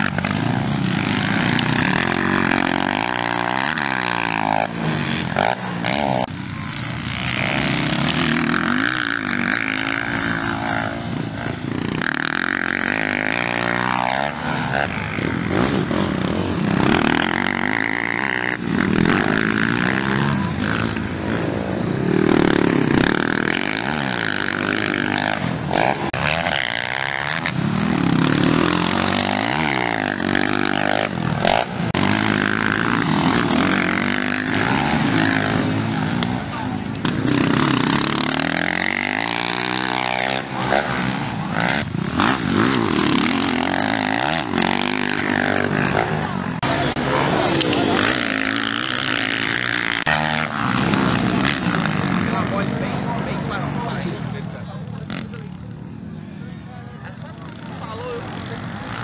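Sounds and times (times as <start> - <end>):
dirt bike engines racing: 0.0 - 59.0.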